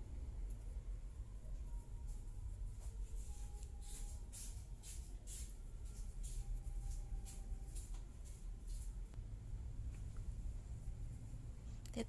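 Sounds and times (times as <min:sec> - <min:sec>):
low background rumble: 0:00.0 - 0:12.0
thread rustling through stitches: 0:01.4 - 0:09.2.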